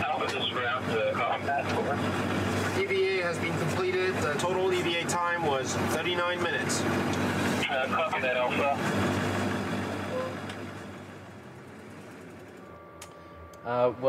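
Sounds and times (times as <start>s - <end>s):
truck engine drone: 0.0s - 14.0s
faint hum: 9.8s - 14.0s.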